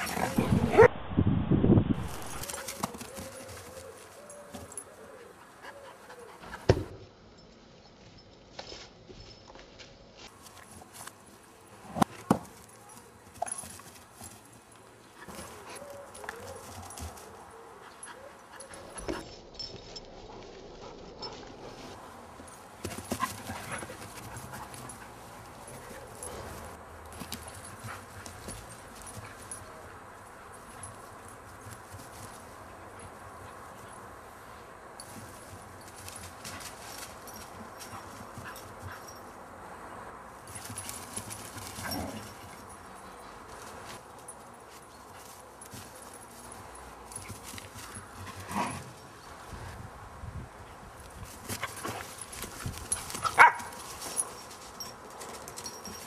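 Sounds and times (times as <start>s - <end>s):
paw thuds and rustles on grass: 18.6s - 33.9s, 35.0s - 39.3s, 40.4s - 49.9s, 51.0s - 56.0s.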